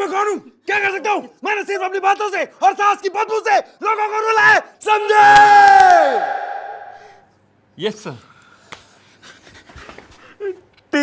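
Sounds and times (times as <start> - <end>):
breathing: 8.2 - 10.4.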